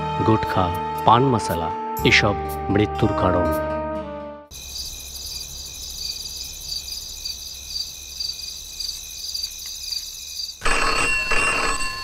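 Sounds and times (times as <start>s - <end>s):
night insects chirping: 4.5s - 10.6s
telephone bell ringing: 10.6s - 12.0s.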